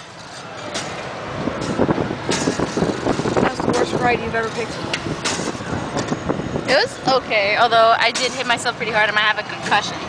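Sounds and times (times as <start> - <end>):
rushing wind and ride machinery: 0.0 - 10.0.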